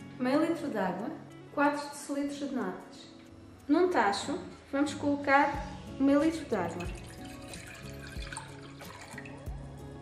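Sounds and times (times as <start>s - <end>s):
soft acoustic music: 0.0s - 10.0s
water pouring into metal pot: 6.5s - 9.6s.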